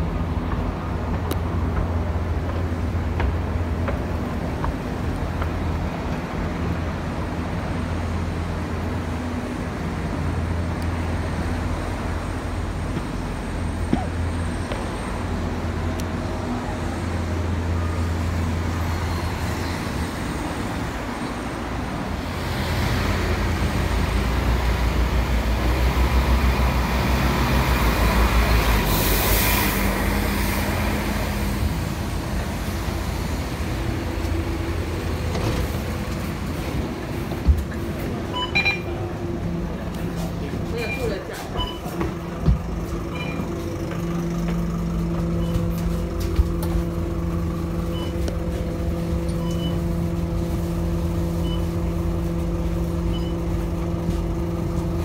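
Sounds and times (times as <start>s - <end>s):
bus engine rumble: 0.0s - 55.0s
road traffic: 0.0s - 55.0s.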